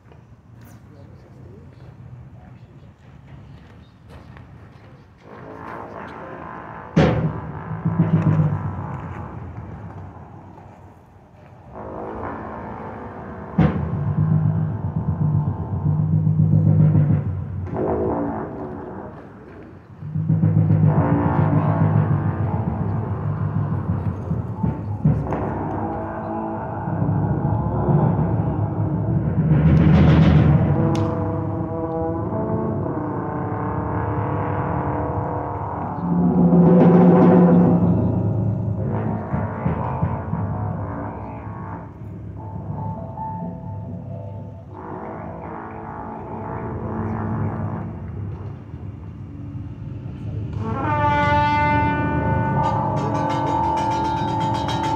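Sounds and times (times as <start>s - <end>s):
keyboard: 0.0s - 54.9s
trombone low held notes: 5.2s - 10.8s, 11.6s - 54.9s
drum hits: 52.4s - 54.9s.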